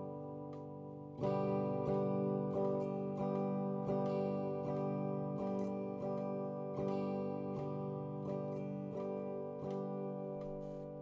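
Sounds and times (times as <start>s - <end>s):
electric guitar strumming chords: 0.0s - 11.0s.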